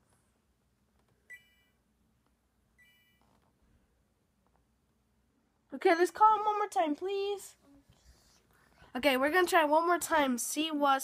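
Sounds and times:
phone beeps: 1.3 - 1.8, 2.8 - 3.2.

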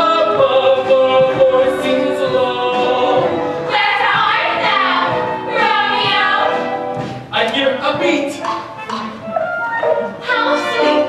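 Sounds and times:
chorus singing a show tune: 0.0 - 6.8
pit orchestra playing: 0.0 - 11.0.

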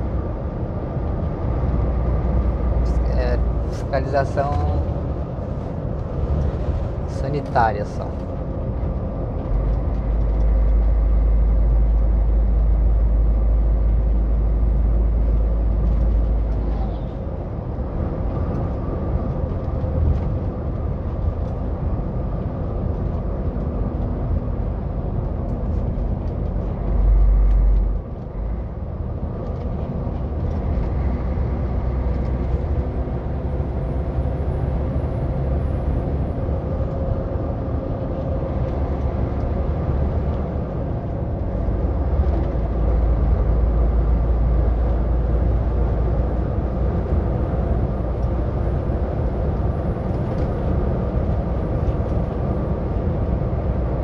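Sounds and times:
road rumble: 0.0 - 54.0.

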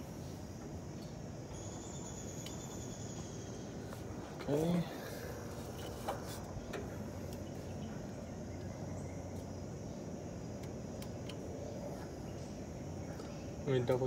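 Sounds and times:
outdoor background noise: 0.0 - 14.0
thin high steady tone: 1.3 - 6.4.

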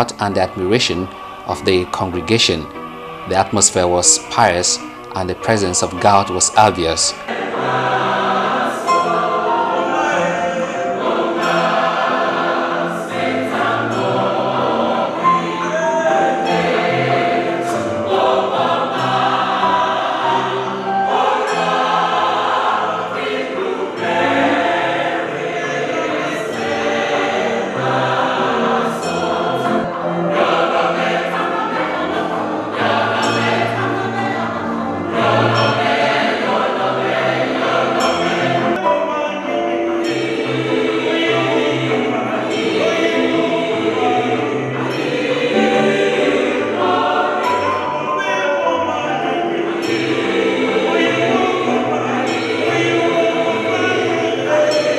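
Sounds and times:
church choir singing: 0.0 - 54.9.

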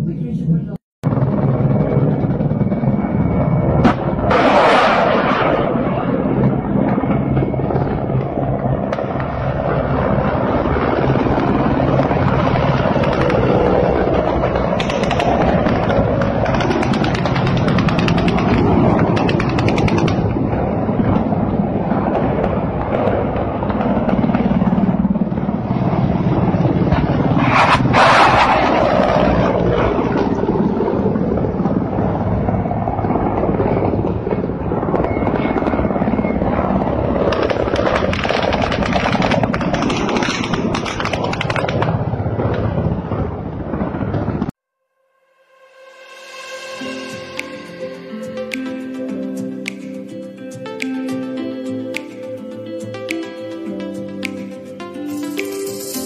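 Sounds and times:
helicopter rotor and turbine noise: 0.0 - 44.6, 45.9 - 56.0.

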